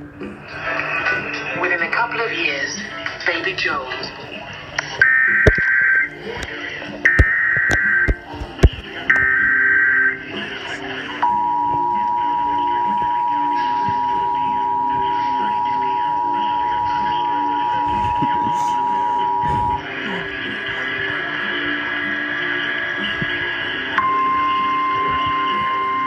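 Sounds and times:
music: 0.0s - 26.0s
two-tone attention signal: 5.0s - 6.2s, 7.1s - 10.2s, 11.2s - 19.8s.

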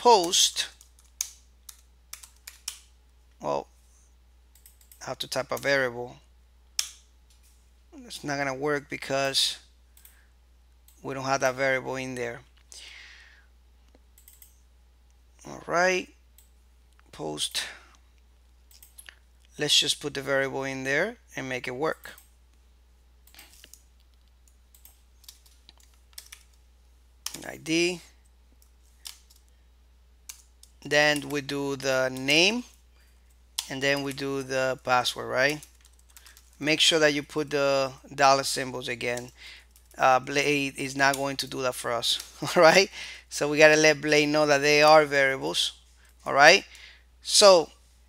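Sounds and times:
computer keyboard typing: 0.2s - 2.9s, 4.5s - 5.0s, 14.2s - 14.6s, 18.7s - 19.0s, 24.4s - 26.6s, 28.6s - 29.5s, 30.3s - 32.7s, 35.4s - 36.6s.

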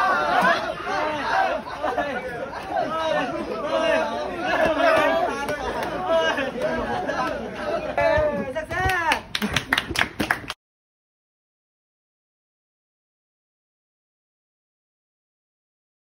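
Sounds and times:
young voices chattering and shouting: 0.0s - 9.3s.

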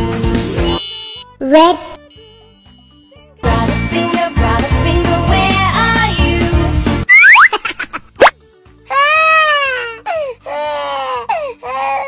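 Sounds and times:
children's song backing music: 1.4s - 7.1s
sliding whistle swoops: 7.1s - 7.6s
baby crying: 8.9s - 12.0s.

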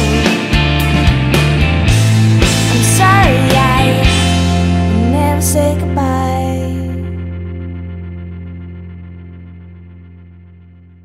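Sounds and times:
pop song closing chord with guitar: 0.0s - 10.7s.

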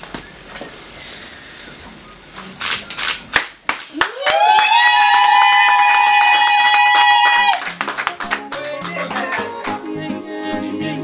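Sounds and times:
hand clapping: 3.4s - 9.9s
song with bass and plucked guitar: 7.7s - 11.0s.

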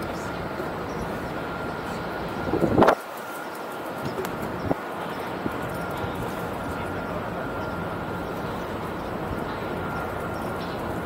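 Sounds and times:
city ambience: 0.0s - 11.0s.

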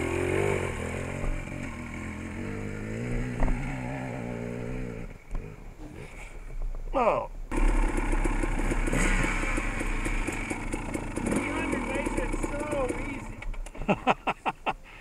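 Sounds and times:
dirt bike engine running: 0.0s - 5.0s, 7.5s - 13.6s
short engine bursts: 7.5s - 13.6s.

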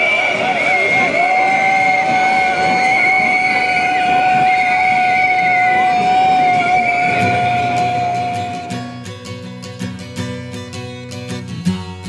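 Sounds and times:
steam whistle blowing: 0.0s - 9.0s
guitar music: 6.5s - 12.0s.

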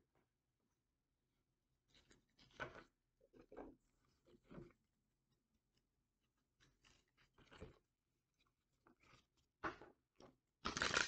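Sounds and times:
cards rustling on wooden table: 10.7s - 11.0s.

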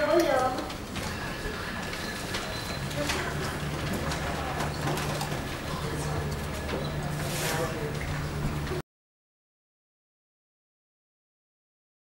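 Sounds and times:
audience murmuring: 0.0s - 8.8s.

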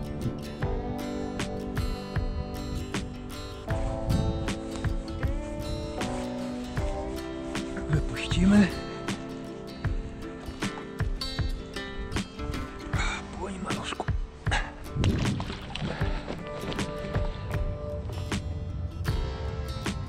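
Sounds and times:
background music with sharp beats: 0.0s - 7.7s, 9.2s - 13.1s, 13.7s - 20.0s.

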